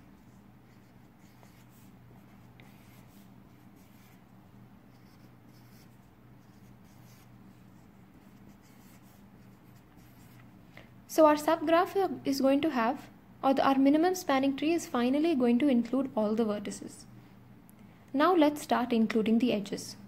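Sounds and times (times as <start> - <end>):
low steady hum: 0.0 - 20.0
marker writing on paper: 0.1 - 4.3, 4.9 - 10.5.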